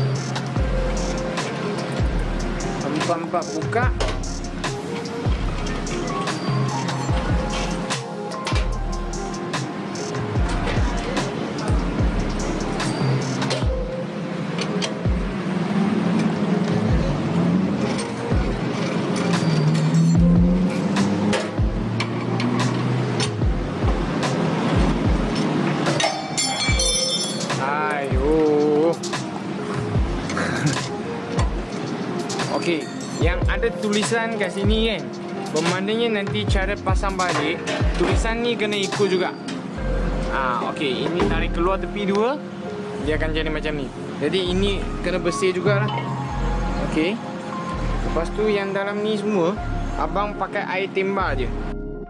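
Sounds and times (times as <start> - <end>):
background music with bass beat: 0.0 - 14.1, 15.0 - 15.7, 16.6 - 40.5.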